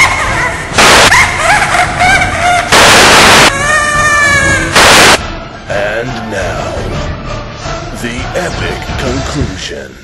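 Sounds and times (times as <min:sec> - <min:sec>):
tv static hiss: 0:00.8 - 0:01.1, 0:02.7 - 0:03.5, 0:04.8 - 0:05.2.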